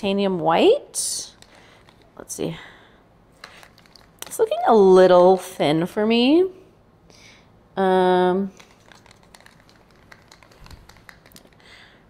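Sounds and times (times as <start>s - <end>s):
stir stick tapping in paint cup: 8.6s - 11.6s.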